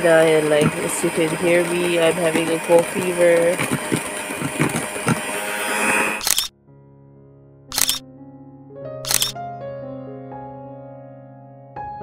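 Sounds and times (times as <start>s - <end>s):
electric hand mixer running: 0.0s - 6.4s
sharp clicks: 6.2s - 6.5s, 7.7s - 8.0s, 9.1s - 9.4s
soft piano music: 6.5s - 12.0s.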